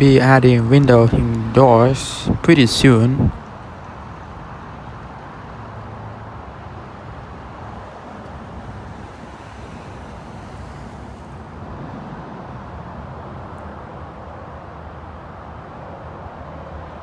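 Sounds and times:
road traffic hum: 0.0s - 17.0s.

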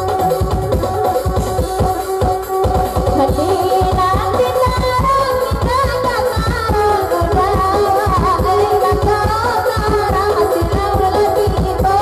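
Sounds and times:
electronic keyboard: 0.0s - 12.0s
steady drum beat: 0.0s - 12.0s
woman singing into a microphone: 0.0s - 12.0s.

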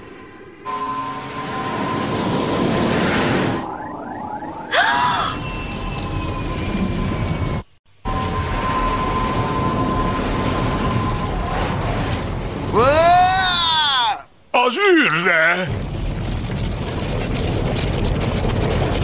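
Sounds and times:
whoosh: 0.0s - 7.6s
slowly falling tone: 0.0s - 12.8s
futuristic ship engine rushing: 0.0s - 13.1s, 15.7s - 19.0s.

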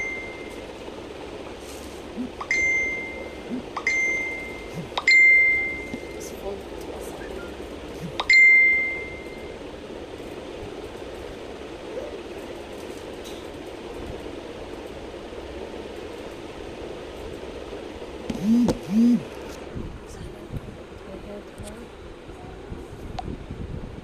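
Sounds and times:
steady background noise: 0.0s - 24.0s
short vocal sounds: 2.1s - 2.4s, 4.7s - 5.0s, 8.0s - 8.2s.

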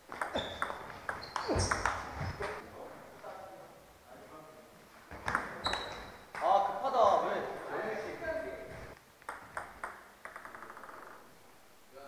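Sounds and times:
ball bouncing to rest: 0.1s - 2.5s, 9.2s - 10.9s
table tennis ball hits: 0.1s - 2.6s, 9.2s - 11.2s.

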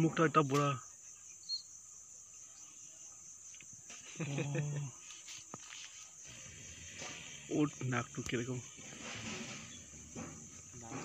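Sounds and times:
high-pitched insect buzz: 0.8s - 11.0s.

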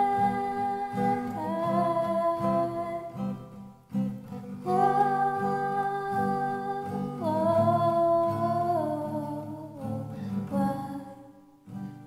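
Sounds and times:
soft acoustic guitar: 0.0s - 12.0s
person singing wordless notes: 4.6s - 11.3s.

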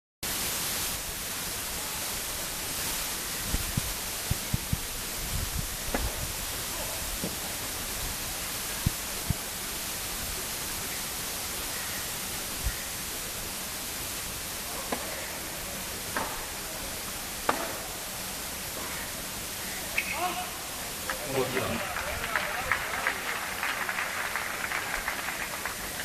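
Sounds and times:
camera microphone hiss: 0.3s - 26.0s.

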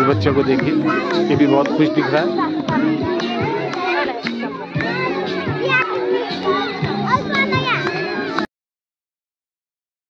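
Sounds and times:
music with steady melody: 0.0s - 8.5s
young children chattering: 0.0s - 8.5s.

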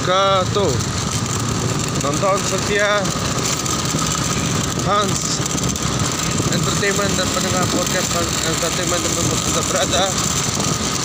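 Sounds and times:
motorcycle engine and road noise: 0.0s - 11.0s.

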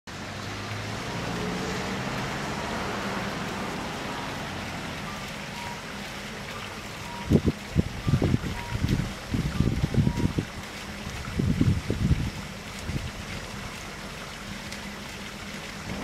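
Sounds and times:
vehicle engine humming: 0.1s - 11.7s
steady outdoor hiss: 0.1s - 16.0s.

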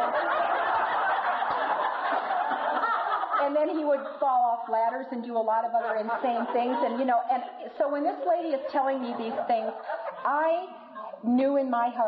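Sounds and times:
audience laughing: 0.0s - 11.2s.

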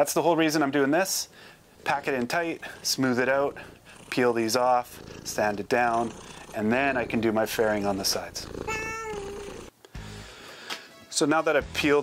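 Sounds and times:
cat meowing: 8.5s - 9.7s.

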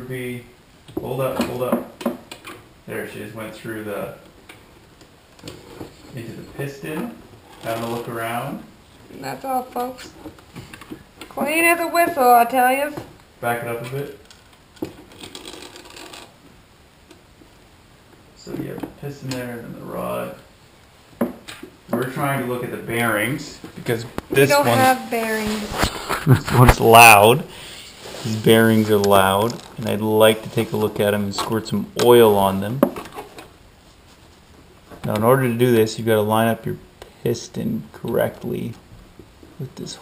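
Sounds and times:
faint hiss: 0.0s - 40.0s.

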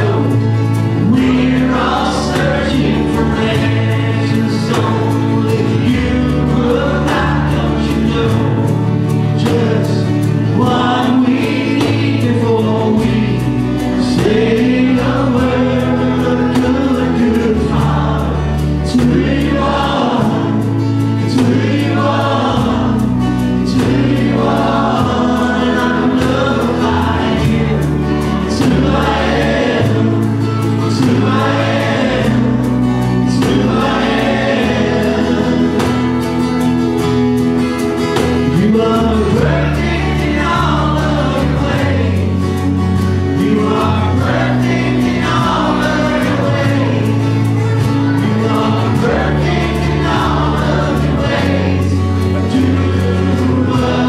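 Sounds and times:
acoustic guitars: 0.0s - 54.0s
church choir singing: 0.0s - 54.0s
drums: 0.0s - 54.0s
keyboard: 0.0s - 54.0s
sustained bass line: 0.0s - 54.0s.

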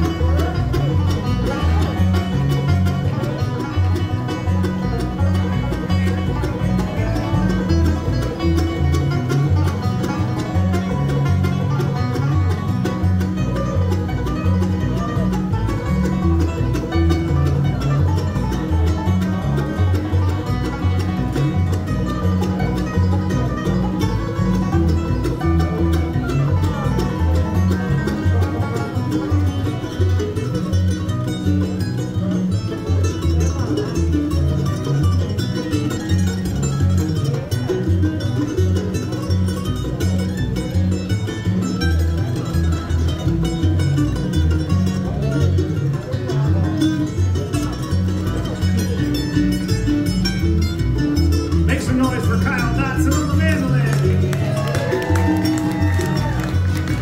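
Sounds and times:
banjo: 0.0s - 57.0s
bluegrass band playing: 0.0s - 57.0s
upright bass low notes: 0.0s - 57.0s.

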